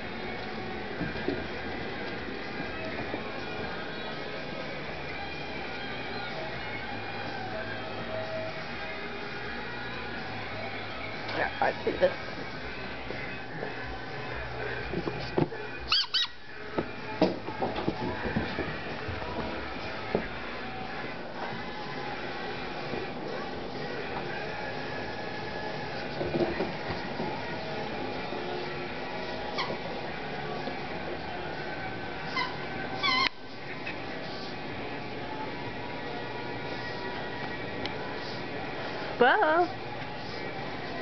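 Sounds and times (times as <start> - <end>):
high-pitched toy squeaks: 15.9 - 16.4, 32.3 - 33.3
soft knocks and rustling: 16.7 - 20.4.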